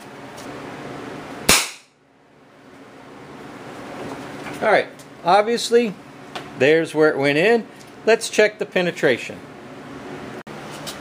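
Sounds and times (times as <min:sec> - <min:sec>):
revolver gunshot: 0:01.5 - 0:02.0.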